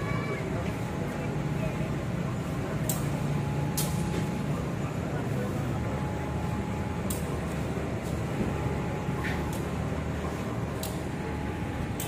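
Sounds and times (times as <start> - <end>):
diesel locomotives rumbling: 0.0 - 12.0.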